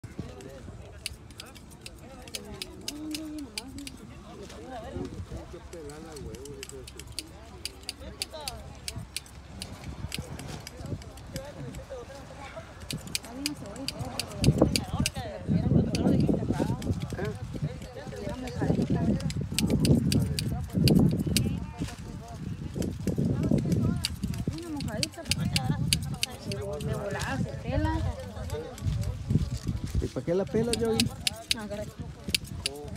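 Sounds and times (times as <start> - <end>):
people talking indistinctly: 0.0 - 32.9
sharp little clicks and snaps: 5.8 - 11.8, 12.8 - 15.2, 19.2 - 21.6, 30.6 - 32.9.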